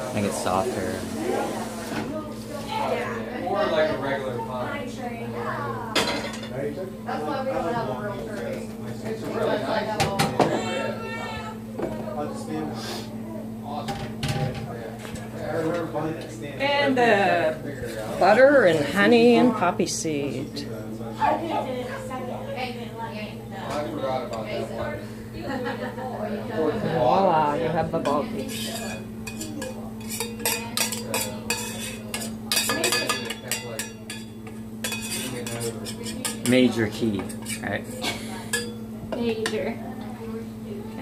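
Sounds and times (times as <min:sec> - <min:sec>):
indistinct household talk: 0:00.0 - 0:41.0
metal spoon scraping skillet: 0:28.4 - 0:33.0, 0:33.8 - 0:36.6.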